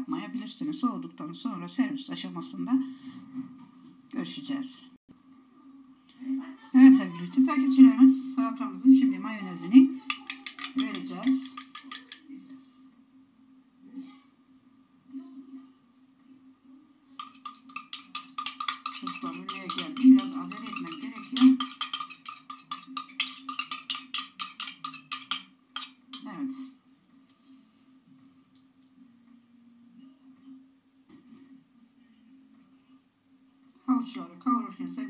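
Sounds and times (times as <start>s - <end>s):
metal spoon scraping ceramic bowl: 10.1s - 12.3s, 17.2s - 26.3s.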